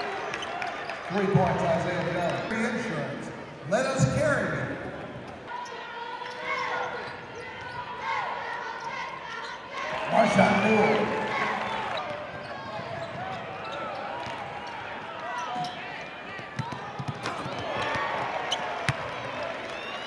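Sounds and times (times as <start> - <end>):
crowd and player voices: 0.0 - 20.0
sneakers squeaking: 4.7 - 19.1
basketball bouncing: 16.4 - 18.2.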